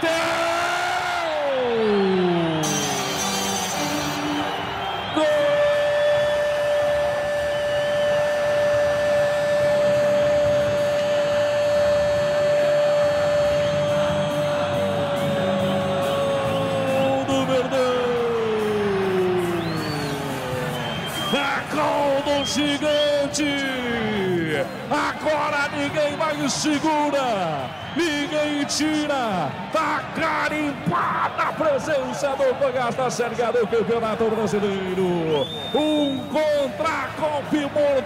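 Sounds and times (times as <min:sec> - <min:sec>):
stadium crowd noise: 0:00.0 - 0:38.0.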